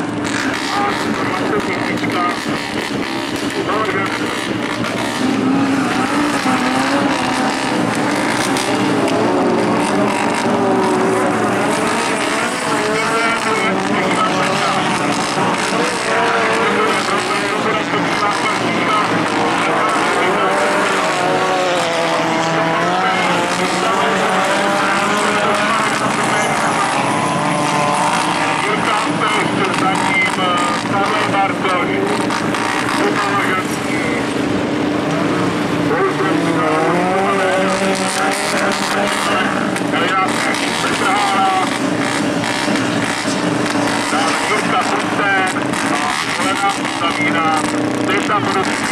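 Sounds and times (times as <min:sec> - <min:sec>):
race car engines revving: 0:00.0 - 0:48.9.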